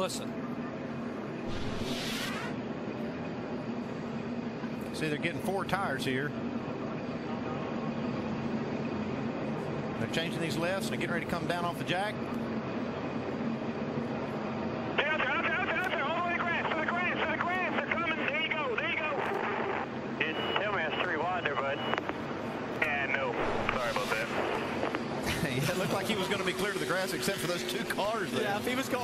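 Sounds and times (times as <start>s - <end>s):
race car engines running: 1.2s - 20.9s, 22.0s - 29.0s
radio voices chatter: 14.9s - 29.0s
steady high beep: 20.2s - 22.0s.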